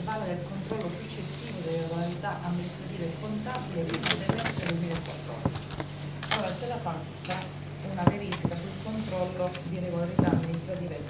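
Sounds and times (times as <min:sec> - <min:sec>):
steady low hum: 0:00.0 - 0:11.0
indistinct voices talking: 0:00.7 - 0:11.0
sharp knocks and clicks: 0:04.0 - 0:05.9, 0:08.0 - 0:08.6, 0:10.2 - 0:10.6.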